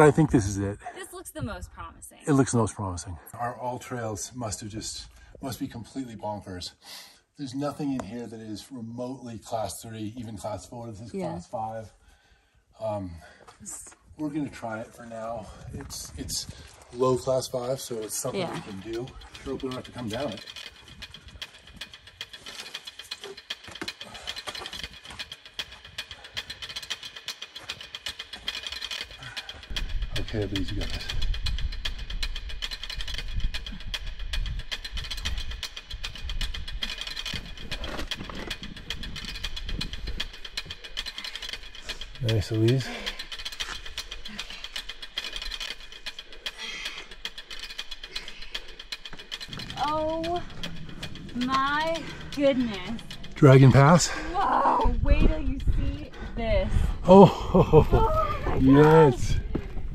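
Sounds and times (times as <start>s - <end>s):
climbing gear rattling: 3.2s - 6.6s, 7.2s - 59.9s
climber scrambling on rock: 14.5s - 59.9s.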